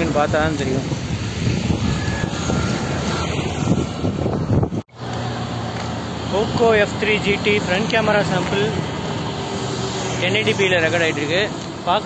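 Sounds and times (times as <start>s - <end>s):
wind rumble: 0.0s - 10.2s
distant engine noise: 0.0s - 12.0s.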